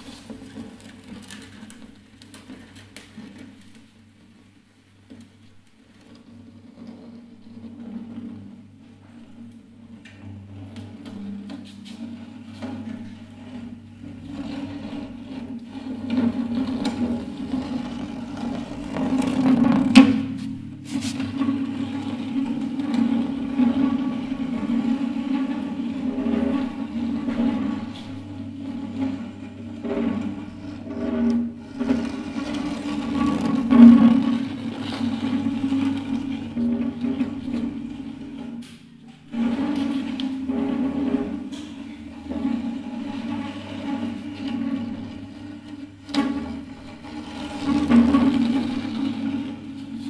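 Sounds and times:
guitar scraped across floor: 6.1s - 50.0s
low guitar string drone: 9.9s - 50.0s.

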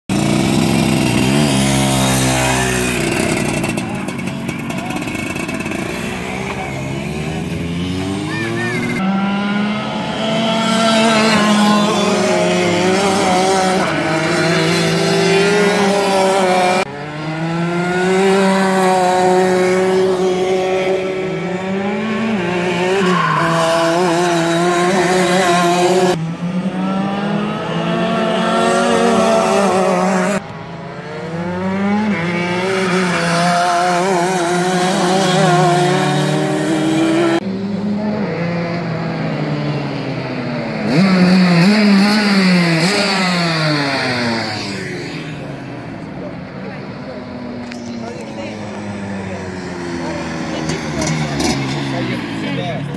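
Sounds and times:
racing kart engines screaming: 0.1s - 52.9s.

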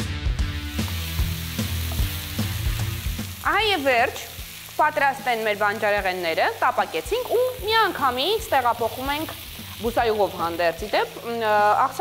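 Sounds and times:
background music with steady beat: 0.0s - 4.8s
vegetables sizzling in a pan: 0.4s - 12.0s.

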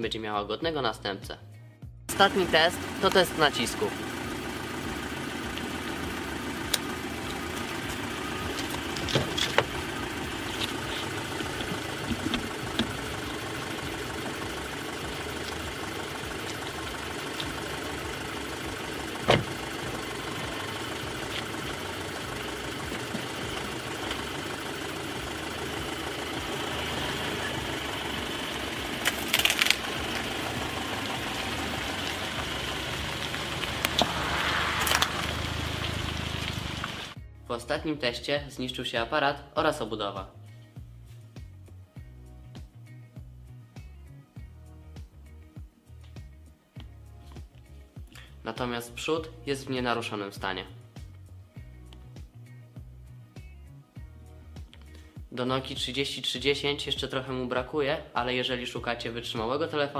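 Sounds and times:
car engine idling: 2.1s - 37.2s
tyres rolling over brick paving: 30.0s - 37.2s.

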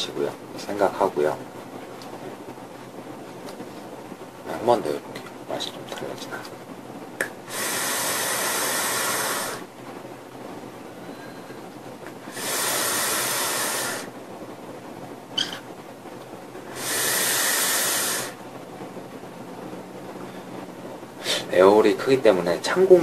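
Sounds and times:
vape draw hissing: 7.4s - 9.7s, 12.2s - 14.1s, 16.6s - 18.4s.

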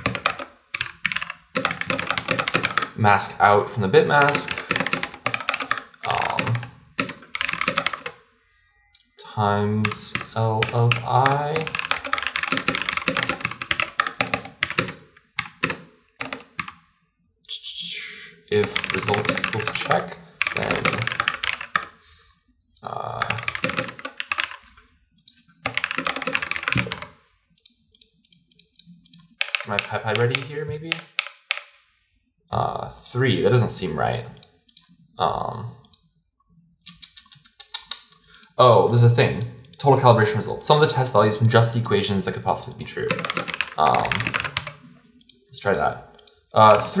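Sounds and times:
computer keyboard typing: 0.0s - 8.2s, 9.0s - 16.8s, 18.5s - 22.0s, 22.8s - 31.8s, 33.2s - 35.0s, 36.9s - 47.0s.

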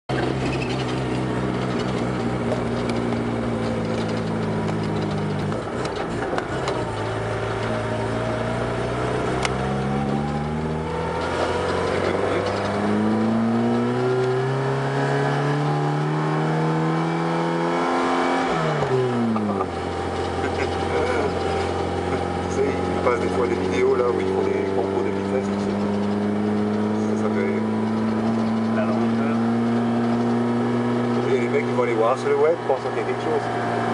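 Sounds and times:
car engine revving uphill: 0.0s - 33.9s.

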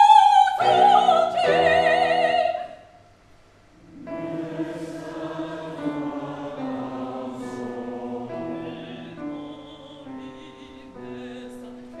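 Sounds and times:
mixed choir singing chords: 0.0s - 2.8s, 3.8s - 12.0s
grand piano accompaniment: 3.8s - 12.0s.

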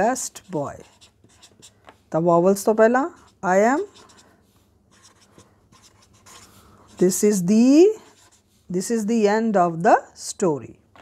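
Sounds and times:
marker scratching on paper: 0.0s - 2.0s, 3.0s - 9.0s.

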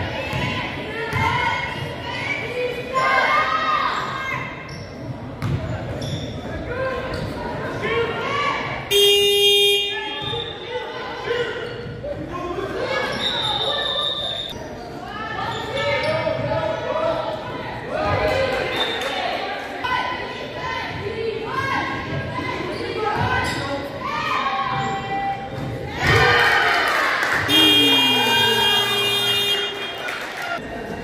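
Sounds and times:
players' voices: 0.0s - 31.0s
loud buzzer: 8.9s - 10.2s, 27.5s - 30.0s
high whistle: 13.2s - 14.6s.

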